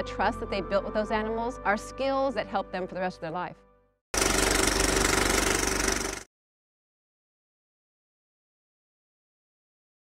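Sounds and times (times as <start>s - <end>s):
rapid mechanical rattle: 4.2s - 6.3s.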